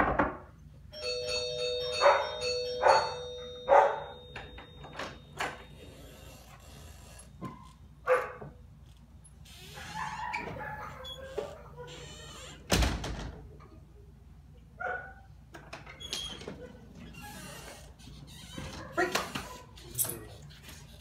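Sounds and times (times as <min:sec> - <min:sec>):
knocking on door: 0:00.0 - 0:00.5
doorbell chime: 0:00.9 - 0:06.2
door opening: 0:01.6 - 0:08.6, 0:09.3 - 0:13.5, 0:15.5 - 0:20.3.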